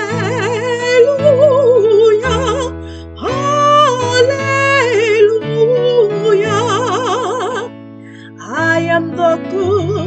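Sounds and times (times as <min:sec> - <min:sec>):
woman singing with vibrato: 0:00.0 - 0:07.7, 0:08.3 - 0:10.0.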